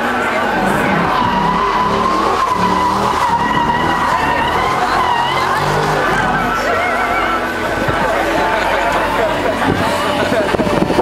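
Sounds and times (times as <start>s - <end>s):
tyres squealing: 0.0s - 10.0s
car engine running: 0.0s - 11.0s.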